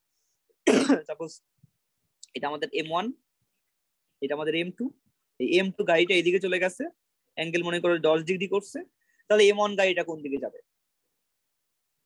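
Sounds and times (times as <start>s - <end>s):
person clearing throat: 0.6s - 1.2s.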